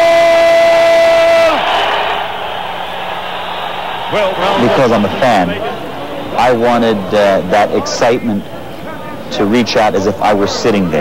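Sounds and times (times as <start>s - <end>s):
crowd cheering: 0.0s - 11.0s
announcer calling into microphone: 4.1s - 11.0s.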